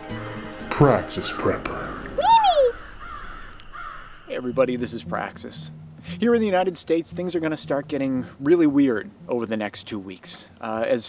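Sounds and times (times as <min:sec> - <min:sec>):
faint background sound: 0:00.6 - 0:11.0
short caw-like call: 0:01.7 - 0:04.3.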